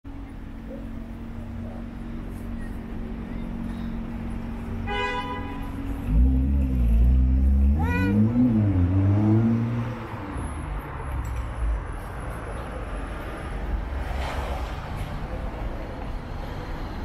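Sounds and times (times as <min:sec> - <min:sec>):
street traffic: 0:00.0 - 0:17.0
vehicle engine close by: 0:00.1 - 0:17.0.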